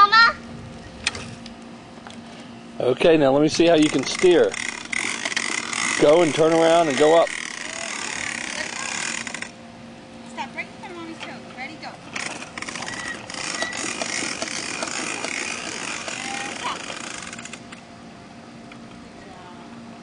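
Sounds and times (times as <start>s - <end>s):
bicycle rattling on asphalt: 3.6s - 9.5s, 12.1s - 17.6s.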